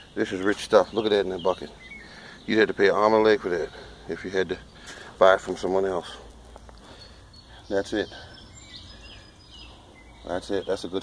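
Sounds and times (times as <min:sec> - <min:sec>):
distant bird chirps: 0:00.0 - 0:11.0.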